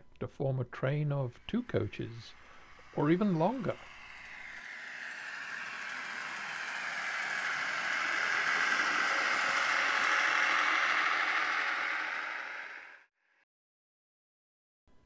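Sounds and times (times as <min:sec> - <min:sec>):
train passing by: 0:01.1 - 0:13.0.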